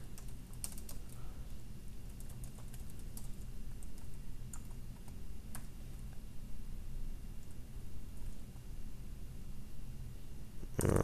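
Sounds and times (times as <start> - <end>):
typing on computer keyboard: 0.0 - 1.2, 2.1 - 6.1.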